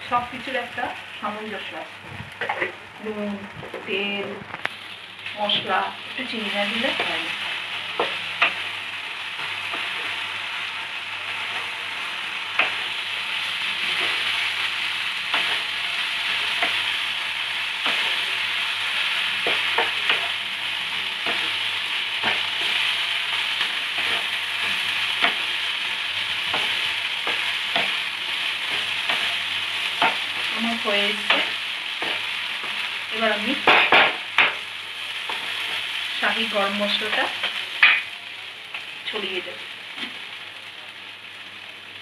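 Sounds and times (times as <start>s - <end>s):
food sizzling in oil: 0.0s - 42.0s.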